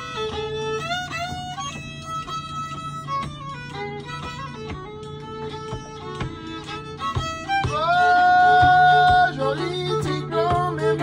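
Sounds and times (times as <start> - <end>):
fiddle sliding note: 0.0 - 11.0
plucked guitar accompaniment: 0.0 - 11.0.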